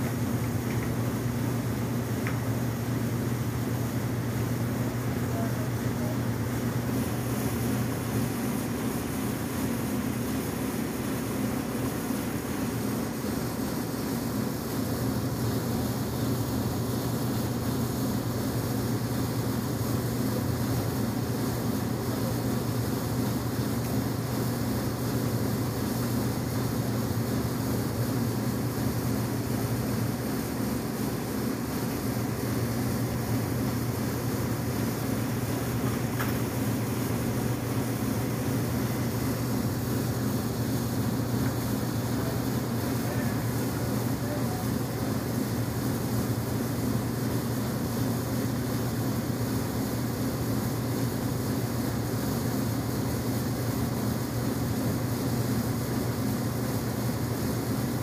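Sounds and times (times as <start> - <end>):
machinery humming: 0.0 - 48.0
even hiss: 0.0 - 54.5.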